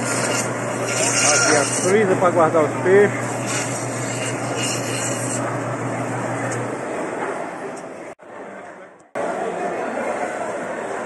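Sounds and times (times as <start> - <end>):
busy indoor market hall: 0.0 - 11.0.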